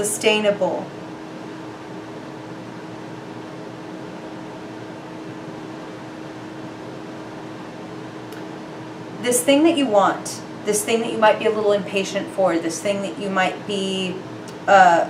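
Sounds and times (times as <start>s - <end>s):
fan hum and hiss: 0.0s - 15.0s.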